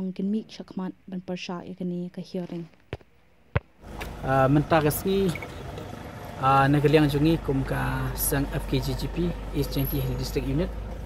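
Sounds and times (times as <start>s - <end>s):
man speaking: 4.2s - 5.5s, 6.4s - 10.8s.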